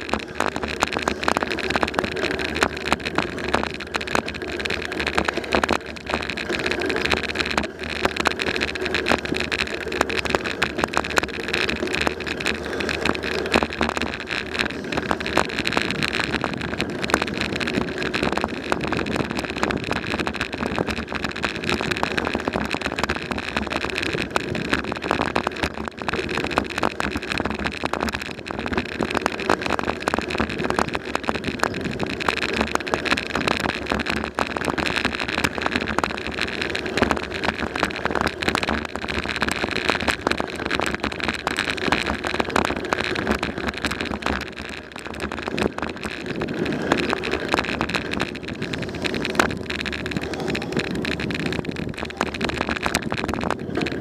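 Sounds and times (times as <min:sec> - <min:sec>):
bicycle rattling over pavement: 0:00.0 - 0:54.0.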